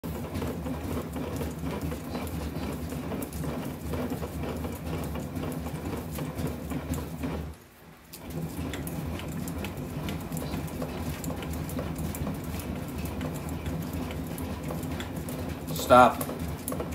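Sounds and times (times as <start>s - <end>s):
rolling machine rumbling and clicking: 0.0s - 16.9s.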